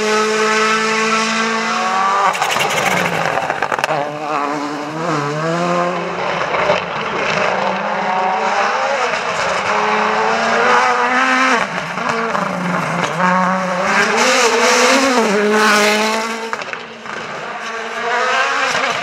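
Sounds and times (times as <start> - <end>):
rally car engine at high revs: 0.0 - 19.0.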